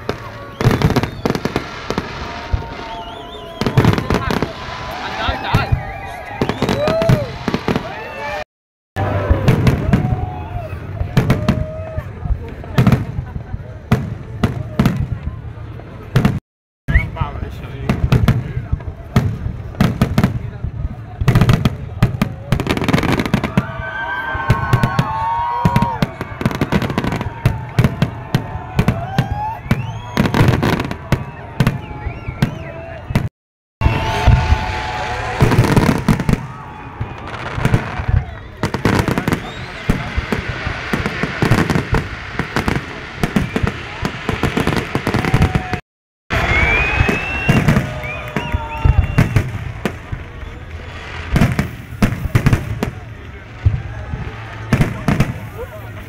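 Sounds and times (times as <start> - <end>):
crowd voices: 0.0 - 8.4, 9.0 - 56.0
fireworks bursts and crackles: 0.0 - 8.4, 9.0 - 56.0.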